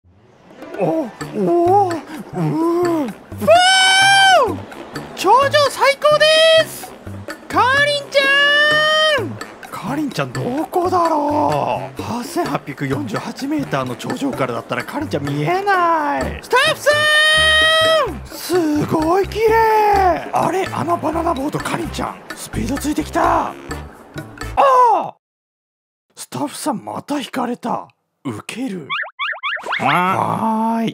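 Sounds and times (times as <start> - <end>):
background music with bass line: 0.6 - 5.8, 6.4 - 24.6
voice making pitched syllables: 0.8 - 4.6, 7.6 - 9.4, 16.2 - 18.2, 28.9 - 30.5.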